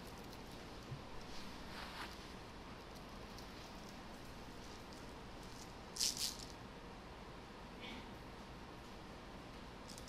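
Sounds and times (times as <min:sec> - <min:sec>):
high rattle or rustle: 0:00.0 - 0:06.6.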